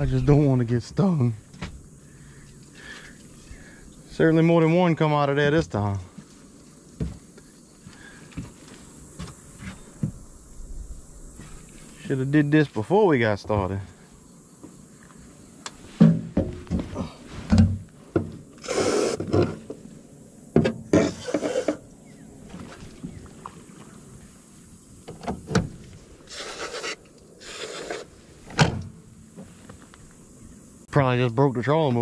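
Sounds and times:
aerosol spray hissing: 18.6 - 19.3, 26.2 - 28.3.

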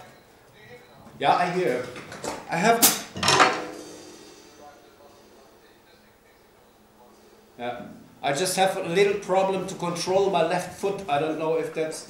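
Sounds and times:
drum kit hit with cymbals: 2.8 - 4.8.

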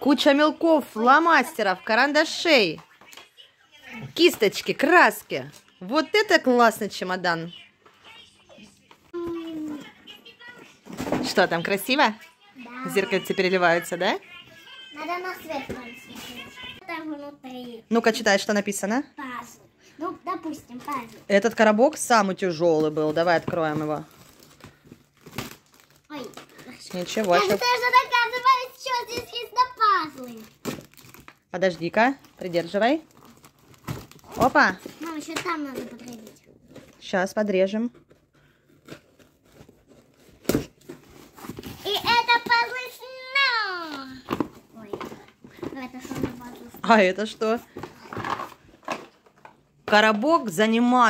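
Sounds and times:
plastic wrap crinkling: 22.4 - 37.1.

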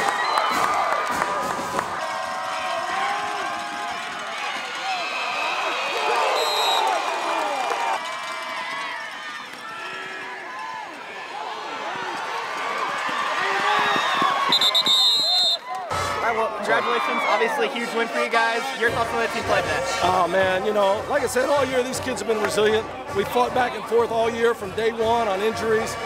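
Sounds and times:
crowd shouting and cheering: 0.0 - 26.0
referee's whistle blasts: 6.3 - 6.9, 14.4 - 15.6.

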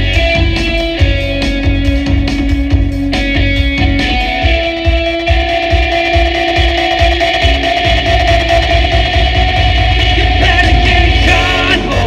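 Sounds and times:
electric guitar sustained notes: 0.0 - 12.0
steady low beat: 0.0 - 12.0.

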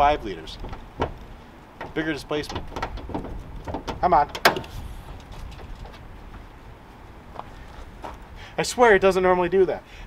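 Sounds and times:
steady low rumble: 0.0 - 10.0
car hood clicks: 0.6 - 4.8.

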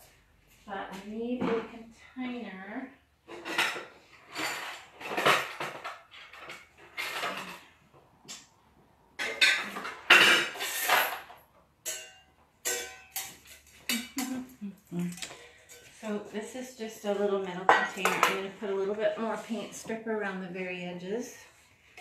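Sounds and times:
metal containers clattering: 3.2 - 7.8, 9.2 - 14.5.

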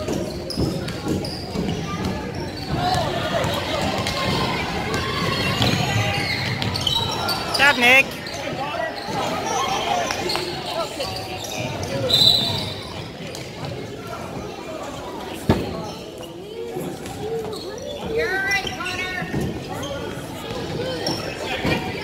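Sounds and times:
spectators' voices echoing: 0.0 - 22.0.

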